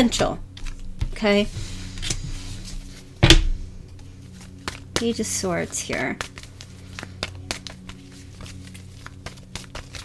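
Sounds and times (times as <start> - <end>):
low hum: 0.0 - 9.9.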